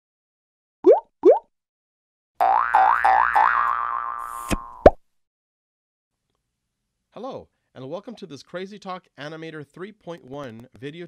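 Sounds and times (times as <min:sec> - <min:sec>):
cartoon rising boings: 0:02.4 - 0:05.0.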